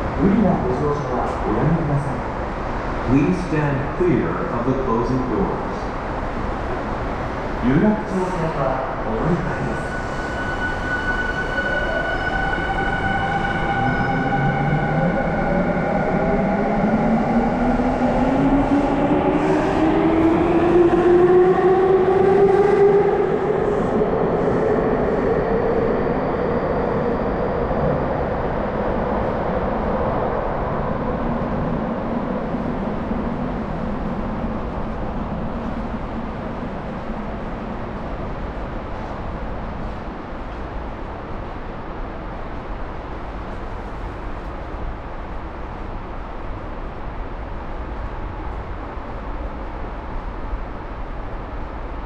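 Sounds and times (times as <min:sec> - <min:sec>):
train rumble in tunnel: 0:00.0 - 0:52.0.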